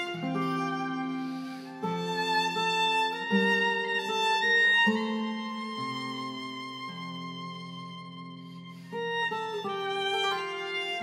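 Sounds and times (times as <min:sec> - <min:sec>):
acoustic guitar accompaniment: 0:00.0 - 0:11.0
violin playing folk tune: 0:00.0 - 0:11.0.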